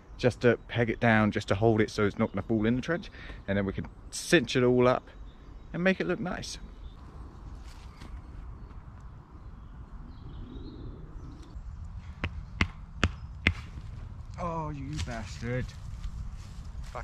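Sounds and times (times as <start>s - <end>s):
sharp knocks: 12.2s - 13.9s.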